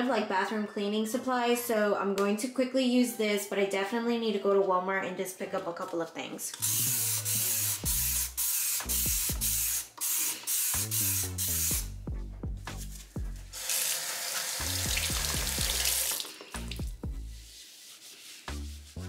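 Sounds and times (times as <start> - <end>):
spray hissing into a sink: 6.6 - 11.9, 13.6 - 16.8
background music with beat: 6.6 - 13.6, 14.6 - 19.0.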